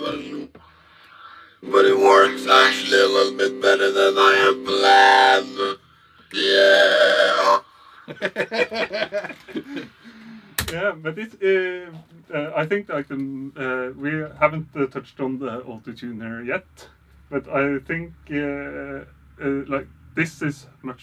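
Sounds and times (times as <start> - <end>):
talkbox synth talking sounds: 0.0 - 0.6, 1.6 - 7.0
people laughing: 8.0 - 10.0.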